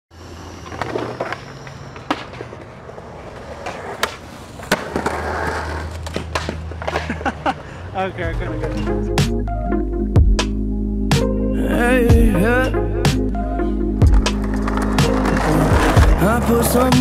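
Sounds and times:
skateboard wheels rolling on concrete: 0.1s - 10.6s, 13.0s - 17.0s
skateboard wooden clacks: 0.6s - 7.4s.

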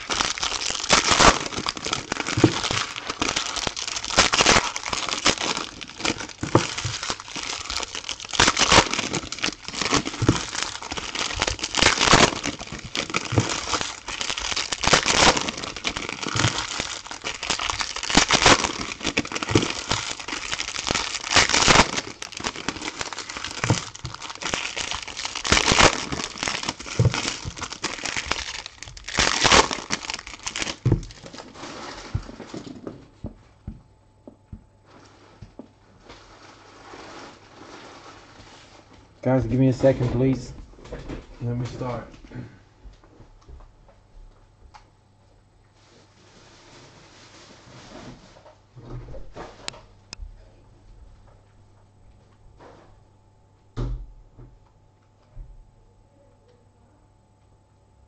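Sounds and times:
foil wrappers crinkling: 0.0s - 33.2s, 36.0s - 40.5s.

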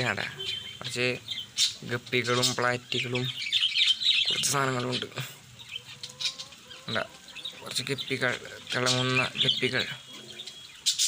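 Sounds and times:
birds chirping and chattering: 0.0s - 11.0s
person speaking: 6.9s - 10.1s.

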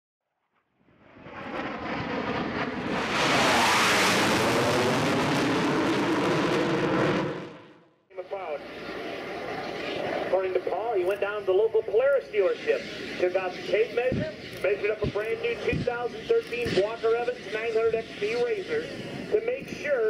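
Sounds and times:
jet aircraft passing: 0.5s - 20.0s.

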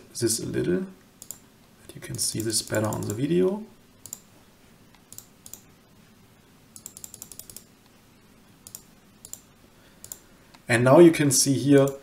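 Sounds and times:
computer keys clicking: 1.2s - 1.4s, 2.1s - 4.3s, 4.9s - 5.7s, 6.8s - 7.7s, 8.6s - 10.6s, 11.8s - 12.0s.

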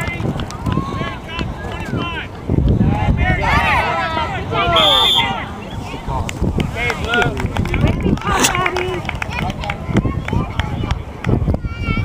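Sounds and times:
voices calling out: 0.0s - 11.2s.

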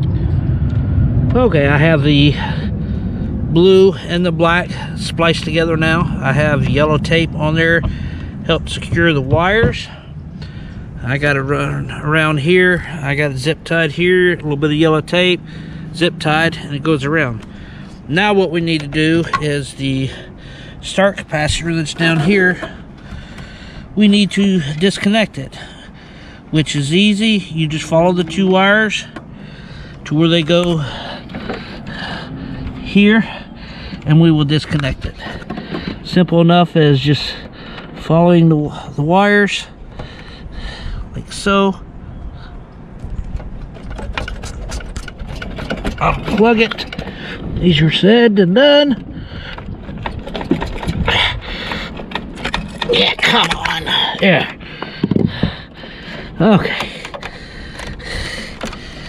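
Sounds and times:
low steady rumble: 0.0s - 59.0s
wires clicking and rattling in metal housing: 20.8s - 25.7s, 26.6s - 38.6s, 43.0s - 59.0s
wires rubbing and rustling: 43.0s - 47.9s, 49.5s - 59.0s.

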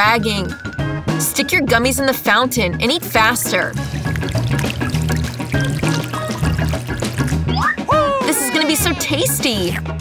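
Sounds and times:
background music with bass line: 0.2s - 10.0s
liquid chocolate pouring: 3.1s - 7.5s.

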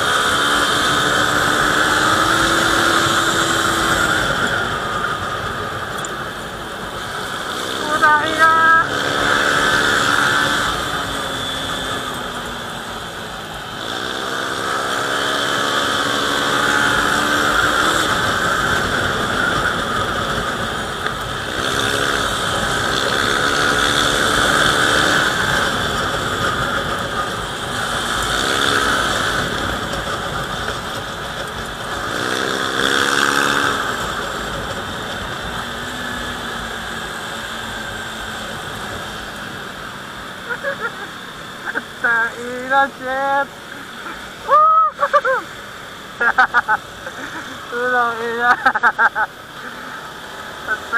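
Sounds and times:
motorcycle engine revving: 0.0s - 50.9s.

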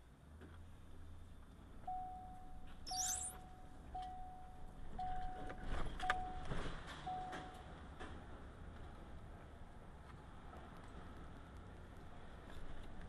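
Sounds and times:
electronic warning beeps: 1.9s - 6.5s
brief high squeak: 2.9s - 3.4s.

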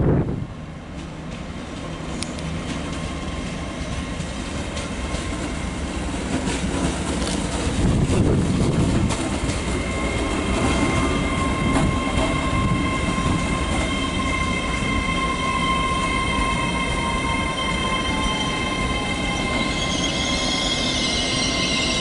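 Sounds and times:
train rumble with whine: 0.0s - 22.0s.

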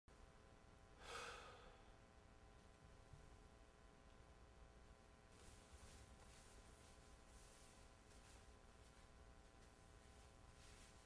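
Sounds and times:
soft sigh-like exhale: 1.0s - 2.0s.

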